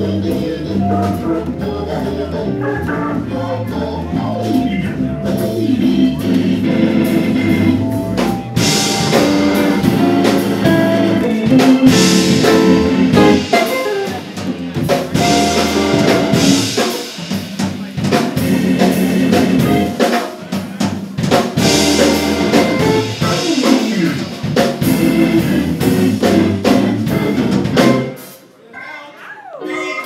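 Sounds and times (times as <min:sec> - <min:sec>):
organ: 0:00.0 - 0:17.2, 0:17.8 - 0:20.2, 0:21.5 - 0:28.4
jazz combo playing a ballad: 0:00.0 - 0:28.4
drum kit cymbals: 0:05.4 - 0:28.5.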